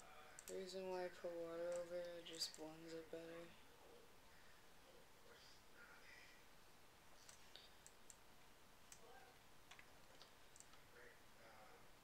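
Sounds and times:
faint small clicks and ticks: 0:00.0 - 0:00.7, 0:01.6 - 0:02.9, 0:07.2 - 0:10.9.

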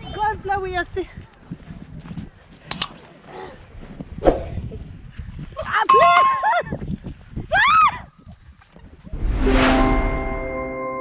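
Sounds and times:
children's voices outdoors: 0:00.0 - 0:01.3
sharp clicks: 0:02.7 - 0:03.0.

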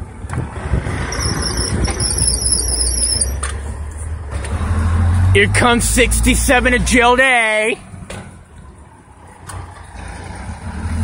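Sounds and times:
vehicle engines running: 0:00.0 - 0:11.0
tyre noise: 0:00.9 - 0:04.5
high wavering squeal: 0:01.0 - 0:03.5.

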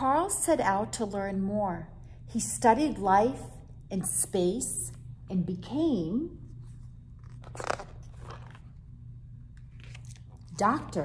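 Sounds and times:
book page turning: 0:06.6 - 0:08.9, 0:09.5 - 0:11.0.

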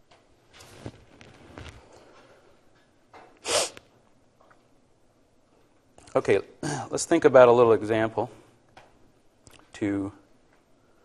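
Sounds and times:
person sneezing: 0:03.4 - 0:03.8.

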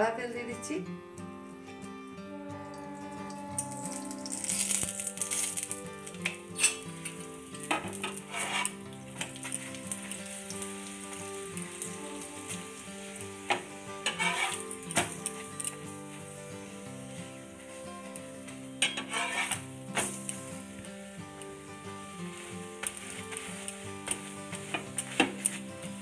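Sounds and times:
oil sizzling under frying bread: 0:01.8 - 0:26.0.

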